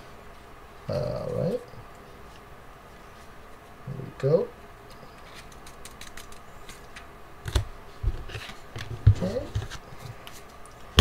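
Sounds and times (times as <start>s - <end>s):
plastic card sleeves rustling: 5.1s - 10.5s.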